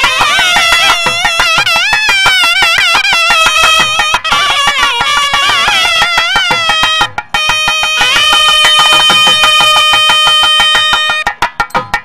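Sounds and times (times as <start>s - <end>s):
nadaswaram melody: 0.0s - 12.0s
rapid tavil drum strokes: 0.0s - 12.0s.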